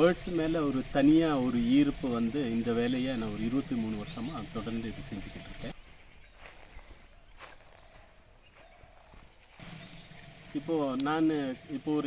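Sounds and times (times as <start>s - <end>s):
man talking: 0.0s - 5.8s, 10.5s - 12.0s
footsteps crunching on dry leaves: 5.3s - 11.0s.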